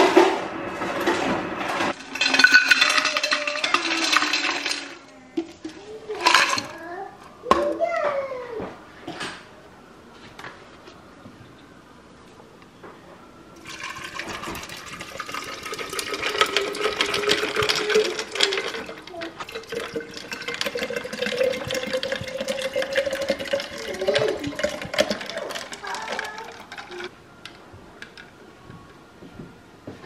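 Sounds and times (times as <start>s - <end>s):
water pouring into a pitcher: 13.6s - 27.1s.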